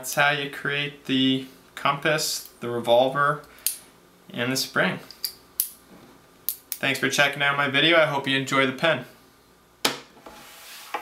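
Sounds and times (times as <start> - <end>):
hands rubbing on wood: 10.3 - 11.0.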